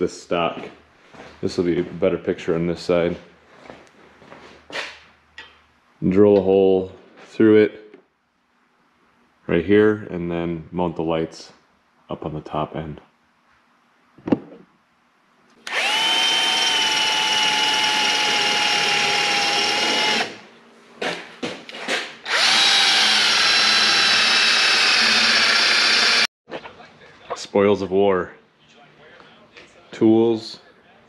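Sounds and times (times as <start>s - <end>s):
cordless drill boring through steel: 15.6s - 20.4s, 22.3s - 26.3s.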